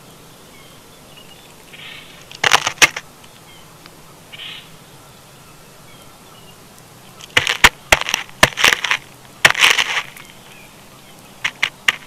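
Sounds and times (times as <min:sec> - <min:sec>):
faint small bird chirps: 0:04.3 - 0:07.4
bird tapping: 0:07.2 - 0:10.4, 0:11.4 - 0:12.0
scratchy rustling: 0:07.3 - 0:10.4, 0:11.4 - 0:12.0.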